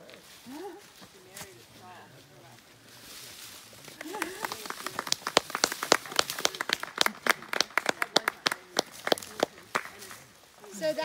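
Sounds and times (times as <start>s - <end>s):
small group applauding: 3.9s - 10.3s.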